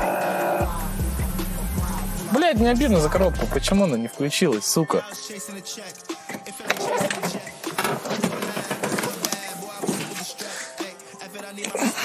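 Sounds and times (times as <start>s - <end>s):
person shifting out of seat: 6.5s - 10.5s.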